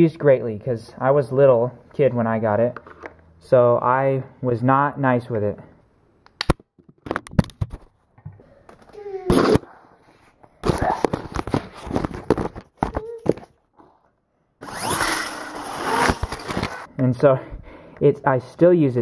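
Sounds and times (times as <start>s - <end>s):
child's voice: 8.9s - 9.6s, 12.9s - 13.4s.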